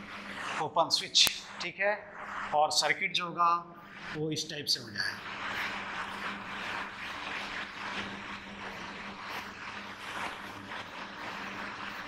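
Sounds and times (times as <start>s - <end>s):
marker scratching on whiteboard: 0.0s - 2.9s, 3.9s - 12.0s.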